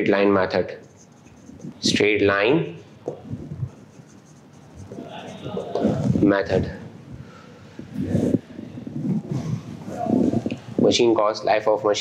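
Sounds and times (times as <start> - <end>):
marker scratching on whiteboard: 0.2 - 2.1, 2.8 - 6.2.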